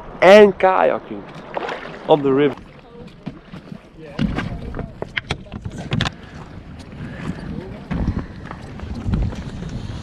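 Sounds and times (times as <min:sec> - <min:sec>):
wind buffeting microphone: 0:01.5 - 0:10.0.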